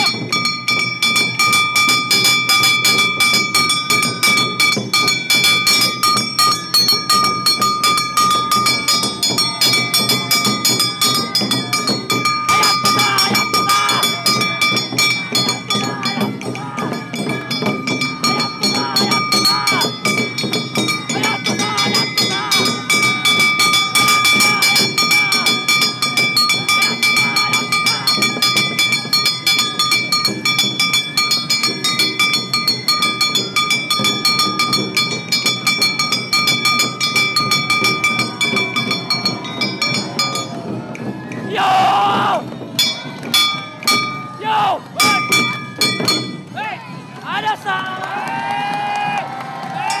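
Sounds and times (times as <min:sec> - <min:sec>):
hand-held brass gong beaten: 0:00.0 - 0:40.6, 0:42.8 - 0:46.6
crowd shouting and crying out: 0:00.0 - 0:50.0.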